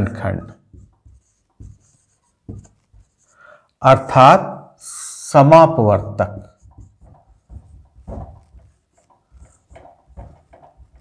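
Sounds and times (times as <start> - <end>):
marker squeaking on whiteboard: 0.3 - 3.4, 6.3 - 11.0.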